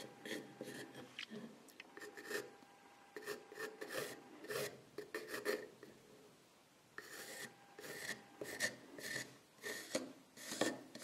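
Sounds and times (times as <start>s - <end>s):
pencil scratching on wood: 0.0s - 1.1s, 2.0s - 2.6s, 3.2s - 5.9s, 7.0s - 11.0s.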